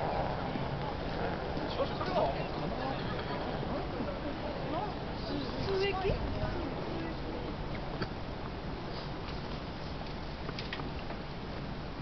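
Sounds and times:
indistinct chatter: 0.0s - 9.3s
nearer voices: 1.2s - 7.6s.

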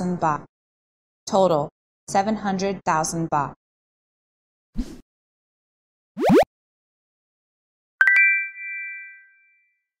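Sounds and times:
bright ringing ding: 8.0s - 9.7s.

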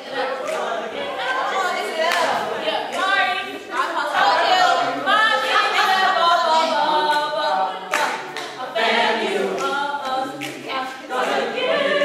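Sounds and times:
group singing unaccompanied: 0.0s - 12.0s.

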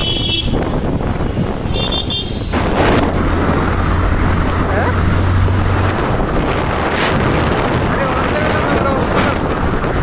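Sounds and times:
motorcycle engine humming: 0.0s - 10.0s
wind rushing over microphone: 0.0s - 10.0s.

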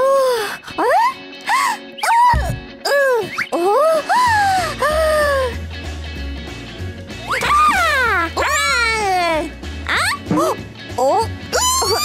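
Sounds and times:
background music with bass: 0.0s - 12.0s
cartoon voices exclaiming: 11.0s - 12.0s.

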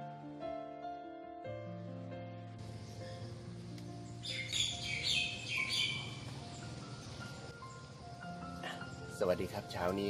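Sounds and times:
soft background music: 0.0s - 10.0s
bird chirping: 2.6s - 9.2s.

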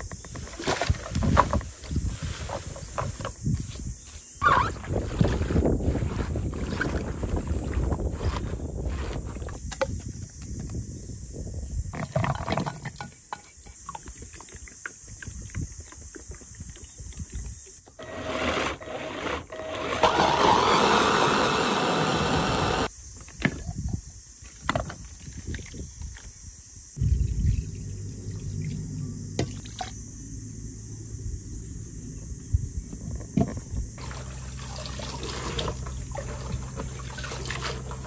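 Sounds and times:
hand blender whirring: 18.0s - 22.9s.

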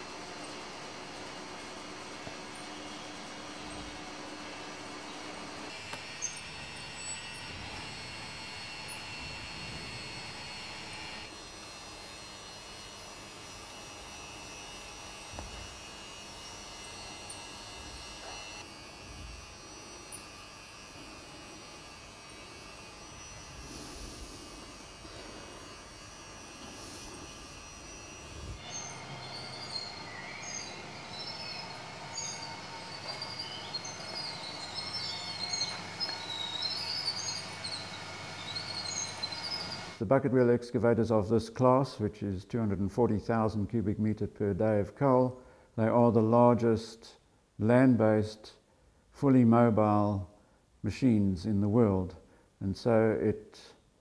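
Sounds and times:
model motors whirring and rattling: 0.0s - 40.0s.

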